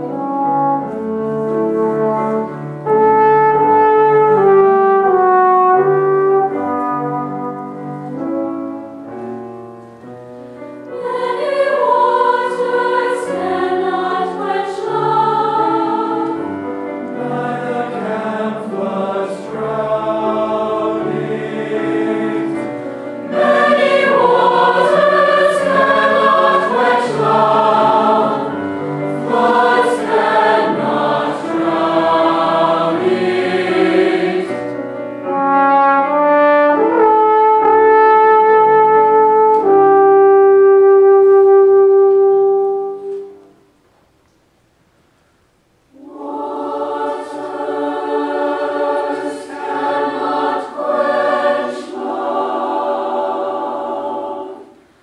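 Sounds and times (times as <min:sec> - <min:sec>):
trombone accompaniment: 0:00.0 - 0:08.9, 0:35.2 - 0:43.6
choir singing: 0:10.8 - 0:37.1, 0:45.9 - 0:55.0.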